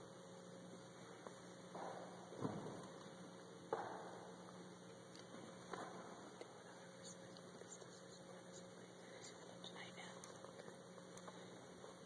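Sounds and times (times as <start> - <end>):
steady low hum: 0.0 - 12.0
faint whispered speech: 6.4 - 10.8.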